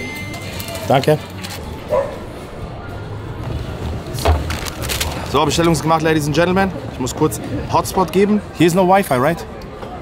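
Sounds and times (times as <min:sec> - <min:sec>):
indoor crowd hubbub: 0:00.0 - 0:10.0.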